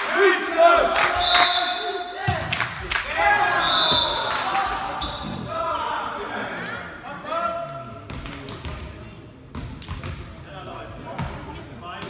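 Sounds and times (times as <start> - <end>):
players shouting: 0.0 - 6.9
high whistle: 1.1 - 2.0, 3.4 - 4.4.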